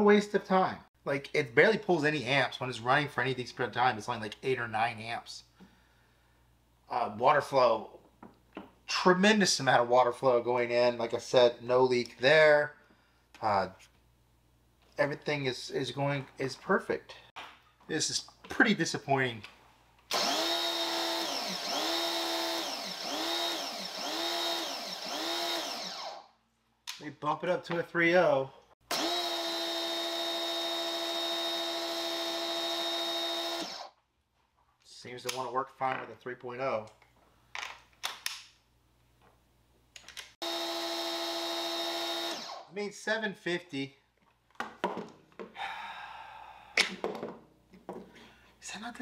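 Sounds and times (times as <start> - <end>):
man speaking: 0.0 - 5.4, 6.9 - 8.0, 8.9 - 12.8, 13.4 - 13.8, 15.0 - 17.3, 17.9 - 19.5, 42.7 - 44.0, 48.6 - 49.0
man sighing: 45.5 - 47.0.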